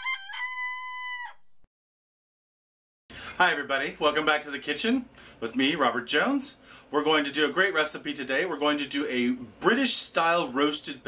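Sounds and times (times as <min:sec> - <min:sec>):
rooster crowing: 0:00.0 - 0:01.6.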